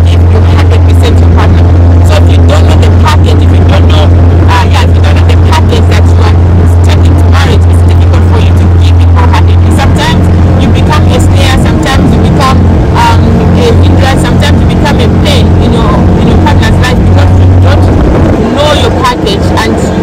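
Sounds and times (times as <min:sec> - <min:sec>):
motorboat engine drone: 0:00.0 - 0:20.0
woman talking: 0:00.0 - 0:20.0.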